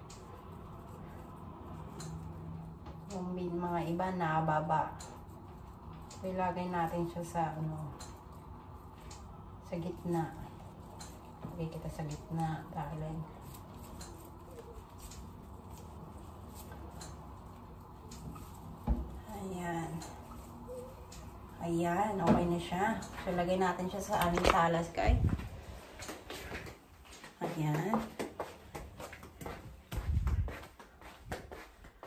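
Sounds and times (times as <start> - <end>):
flower stems rustling: 0.0 - 27.2.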